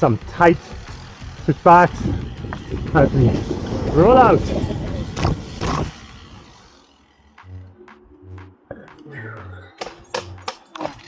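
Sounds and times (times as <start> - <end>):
rushing bike ride noise: 0.0 - 8.7.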